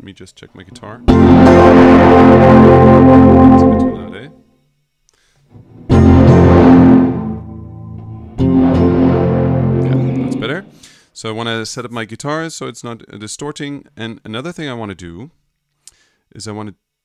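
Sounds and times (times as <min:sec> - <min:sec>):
guitar chords ringing: 0:00.8 - 0:04.4, 0:05.5 - 0:11.0.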